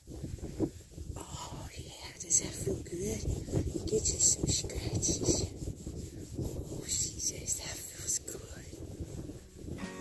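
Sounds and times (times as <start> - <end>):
hand rubbing animal coat: 0.1 - 10.0
soft whispering: 1.1 - 9.2.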